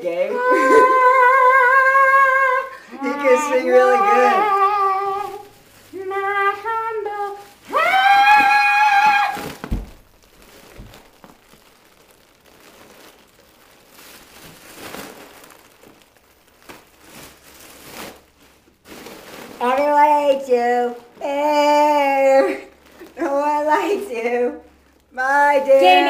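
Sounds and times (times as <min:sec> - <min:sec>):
foil balloon crinkling: 0:00.0 - 0:26.0
thump: 0:09.6 - 0:10.0.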